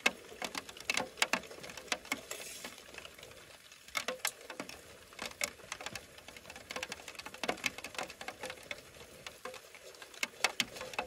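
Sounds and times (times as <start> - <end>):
light clicks and taps: 0.0 - 11.0.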